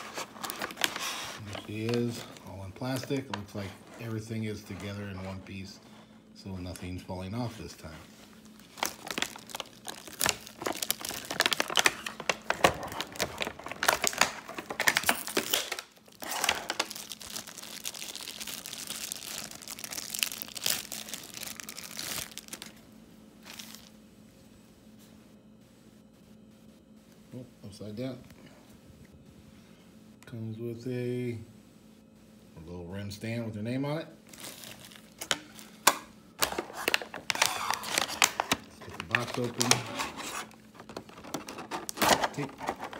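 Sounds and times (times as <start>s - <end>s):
plastic wrapping crinkling: 0.0s - 5.8s, 6.6s - 22.8s, 23.4s - 23.9s, 34.2s - 42.9s.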